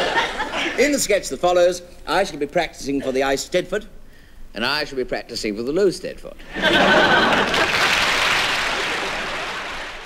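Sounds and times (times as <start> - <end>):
studio audience laughing: 0.0 - 0.8, 6.4 - 10.0
audience applauding: 7.0 - 10.0.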